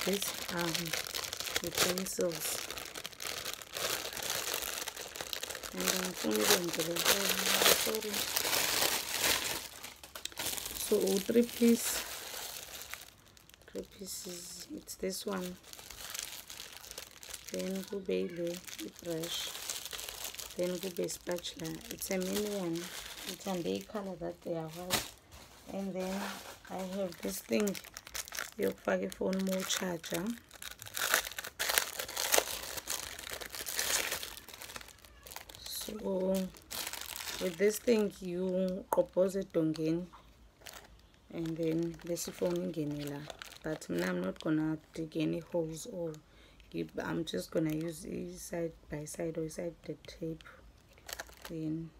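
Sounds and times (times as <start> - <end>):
plastic packaging crinkling: 0.0 - 48.5, 50.2 - 51.9.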